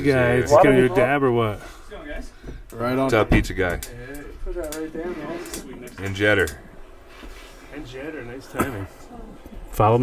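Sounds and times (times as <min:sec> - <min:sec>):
men talking: 0:00.0 - 0:10.0.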